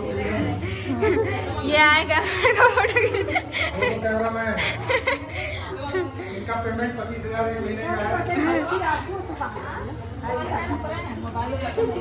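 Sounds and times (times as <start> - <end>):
overlapping group chatter: 0.0 - 12.0.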